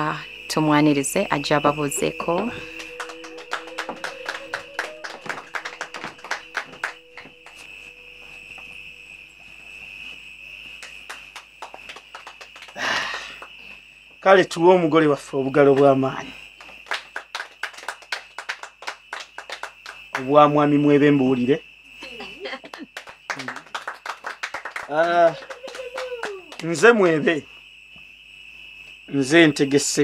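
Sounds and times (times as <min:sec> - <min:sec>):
soft background music: 0:00.2 - 0:08.8
people clapping: 0:02.0 - 0:08.1, 0:10.8 - 0:13.6, 0:15.1 - 0:20.7, 0:22.2 - 0:27.4.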